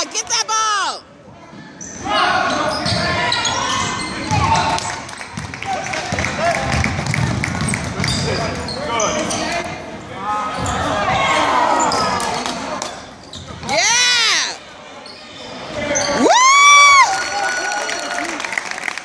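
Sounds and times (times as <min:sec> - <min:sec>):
sneakers squeaking: 0:01.6 - 0:04.8, 0:06.2 - 0:09.6, 0:10.5 - 0:14.2, 0:15.0 - 0:16.2.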